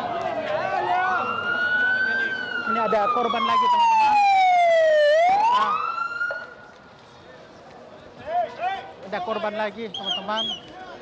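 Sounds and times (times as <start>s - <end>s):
ambulance siren wailing: 0.8s - 6.6s.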